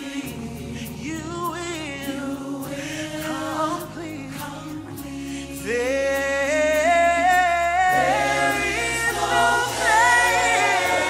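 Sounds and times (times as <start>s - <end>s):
gospel choir singing in harmony: 0.0s - 11.0s.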